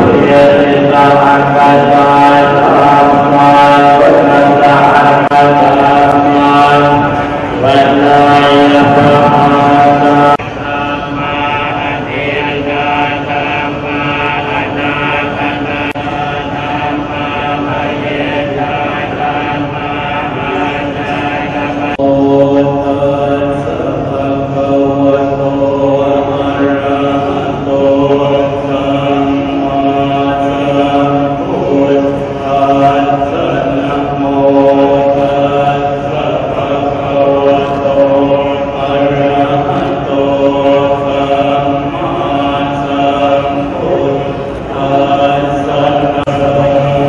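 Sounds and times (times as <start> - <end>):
monks chanting in unison: 0.0 - 47.0.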